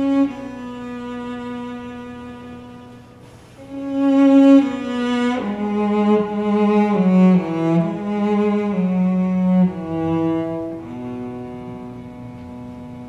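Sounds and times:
cello playing slow melody: 0.0 - 13.0.

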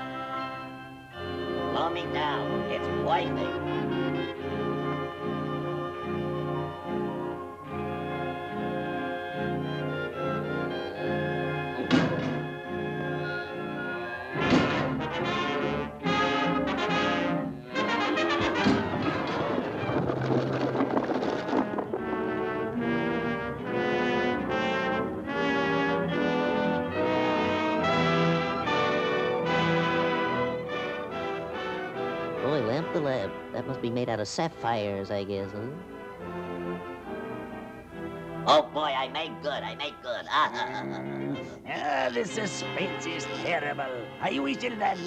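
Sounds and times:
orchestral brass chords: 0.0 - 19.1, 22.0 - 34.2.

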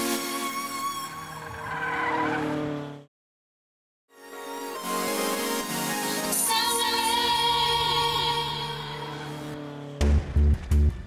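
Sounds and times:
tyre skid squeal: 0.6 - 2.7.

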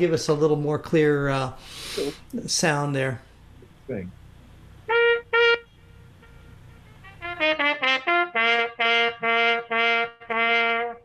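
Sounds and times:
muted trumpet notes: 4.9 - 11.0.

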